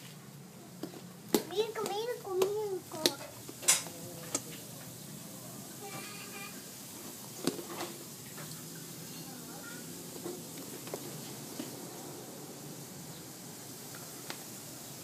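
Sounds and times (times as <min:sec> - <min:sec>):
child chattering: 0:01.5 - 0:03.3, 0:05.8 - 0:06.6, 0:09.5 - 0:09.9.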